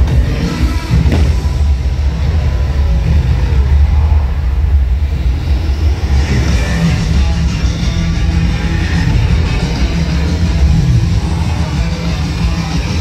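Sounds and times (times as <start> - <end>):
car engine revving effects: 0.0 - 13.0.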